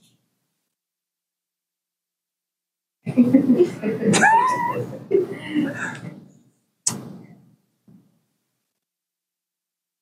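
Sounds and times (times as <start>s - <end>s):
people talking: 3.1s - 6.2s.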